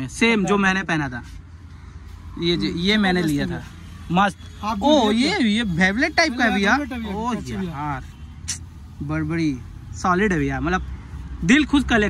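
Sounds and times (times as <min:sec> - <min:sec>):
man talking: 0:00.0 - 0:01.4, 0:02.3 - 0:12.0.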